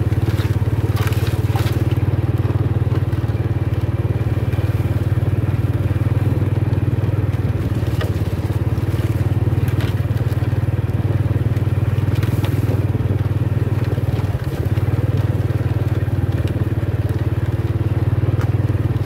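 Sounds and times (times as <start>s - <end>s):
crackles: 0.0s - 19.0s
small motorcycle engine running: 0.0s - 19.0s.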